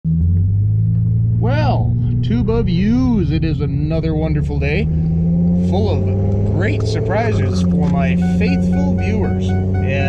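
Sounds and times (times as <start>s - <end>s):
truck engine drone from inside cab: 0.1s - 10.0s.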